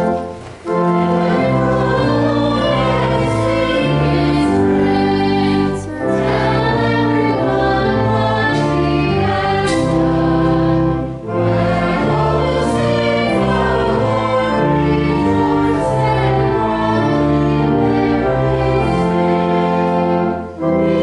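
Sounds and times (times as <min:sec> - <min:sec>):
group singing a hymn: 0:00.0 - 0:21.0
organ chords: 0:00.0 - 0:21.0.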